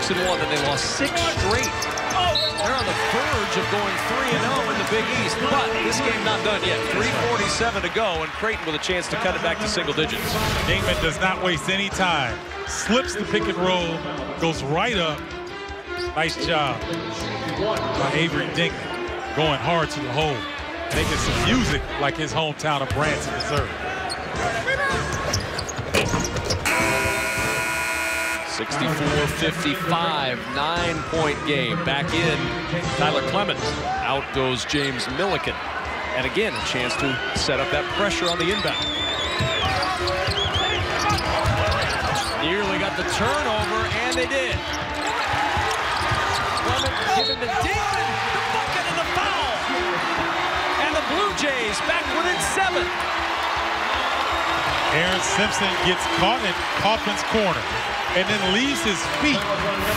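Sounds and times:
arena crowd noise: 0:00.0 - 0:59.9
sneakers squeaking on court: 0:00.1 - 0:03.1, 0:15.9 - 0:16.2, 0:23.0 - 0:27.6, 0:38.1 - 0:42.5, 0:43.3 - 0:48.1
arena horn: 0:26.6 - 0:28.8.

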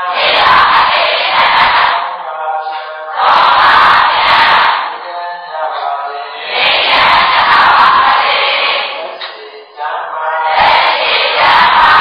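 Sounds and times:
monks chanting a drawn-out call: 0:00.0 - 0:12.0.

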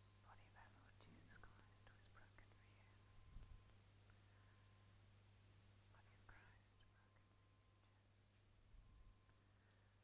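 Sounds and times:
steady low hum: 0:00.0 - 0:10.0
people whispering: 0:00.2 - 0:03.1, 0:05.9 - 0:07.3.

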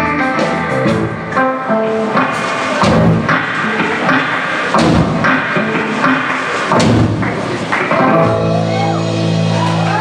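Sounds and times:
drum kit hits: 0:00.0 - 0:09.8
electric guitar: 0:00.0 - 0:10.0
surf rock band playing: 0:00.0 - 0:10.0.

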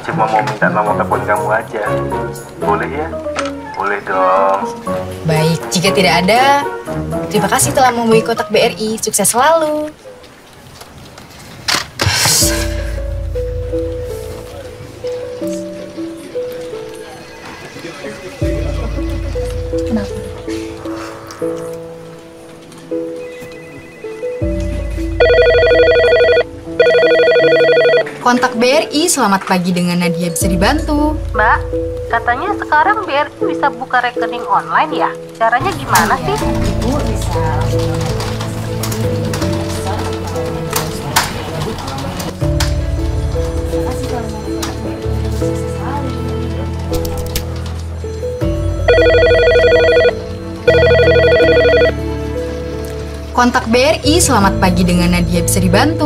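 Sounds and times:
soft music with slow notes: 0:00.0 - 0:56.0
telephone ringing electronic trill: 0:25.2 - 0:28.1, 0:48.9 - 0:52.0.

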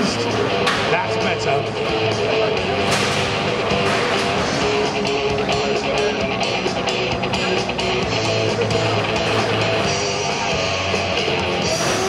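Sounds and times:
rock music with loud guitar: 0:00.0 - 0:12.0.

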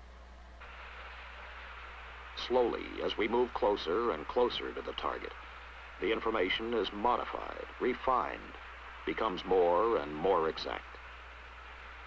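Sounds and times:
film soundtrack hiss: 0:00.0 - 0:12.0.

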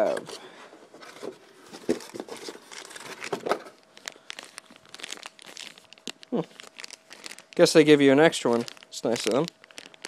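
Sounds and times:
plastic packaging crinkling: 0:01.2 - 0:10.0.

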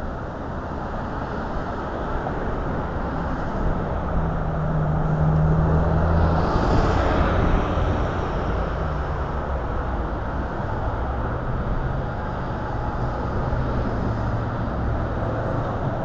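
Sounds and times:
bus engine humming: 0:00.0 - 0:16.0
street traffic: 0:00.0 - 0:16.0.

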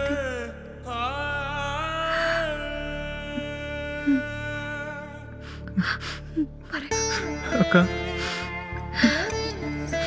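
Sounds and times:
soft background music: 0:00.0 - 0:10.0
person gasping: 0:08.0 - 0:09.5.

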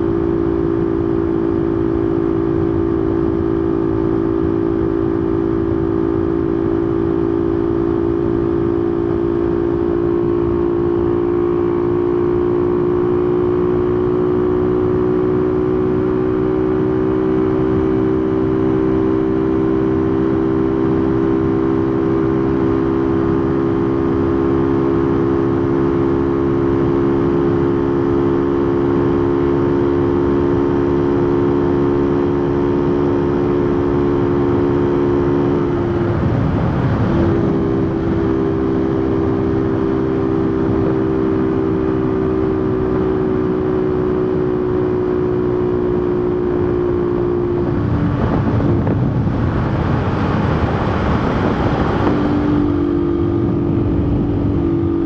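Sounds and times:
motorcycle engine cruising: 0:00.0 - 0:55.0
wind rushing on microphone: 0:17.7 - 0:55.0.

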